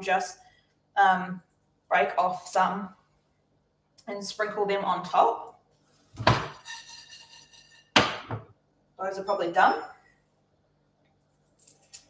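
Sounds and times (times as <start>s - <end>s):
kitchenware knock ringing: 8.0s - 8.5s.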